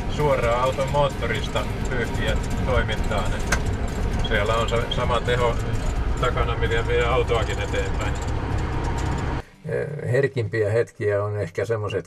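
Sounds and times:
truck engine drone: 0.0 - 9.5
road noise: 0.0 - 9.6
man's voice: 0.1 - 3.5, 9.6 - 12.0.

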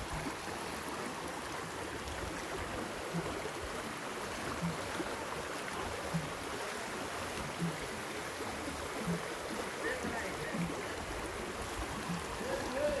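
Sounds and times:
floodwater running: 0.0 - 13.0.

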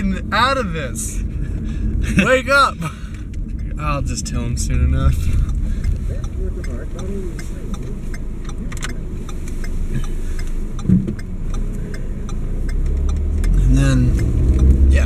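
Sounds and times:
car engine rumble: 0.0 - 15.0
road noise: 0.0 - 15.0.

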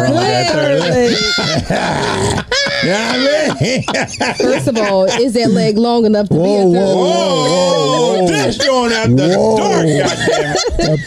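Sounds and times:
people laughing: 0.0 - 5.8, 6.4 - 11.0.

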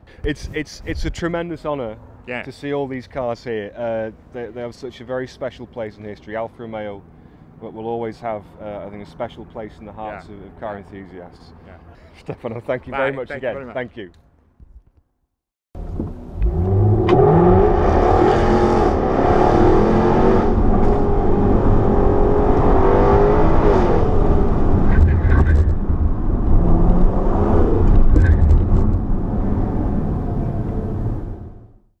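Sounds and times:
car engines revving: 15.8 - 31.6.

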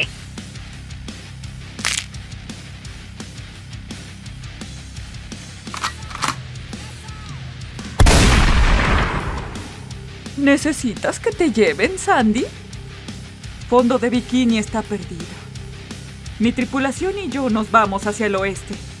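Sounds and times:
background music: 0.0 - 19.0
loud explosion-like blast: 8.0 - 9.9.

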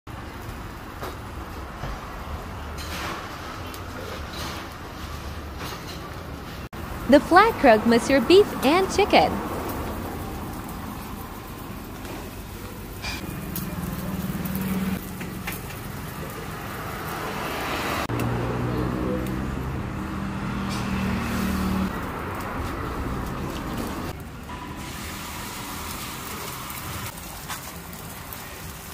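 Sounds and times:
roadside traffic: 0.1 - 28.9
vehicle engine humming: 6.8 - 28.8.

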